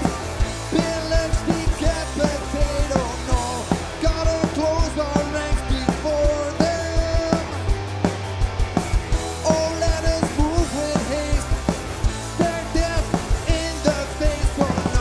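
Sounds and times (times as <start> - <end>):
punk rock band playing live: 0.0 - 15.0.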